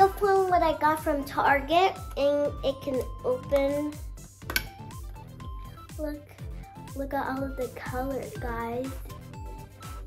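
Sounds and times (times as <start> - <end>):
background music with a beat: 0.0 - 10.0.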